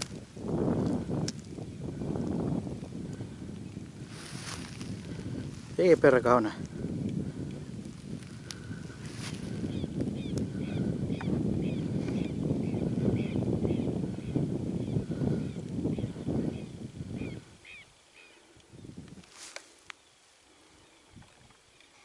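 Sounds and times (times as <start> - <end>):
wind buffeting microphone: 0.0 - 19.5, 20.6 - 21.6.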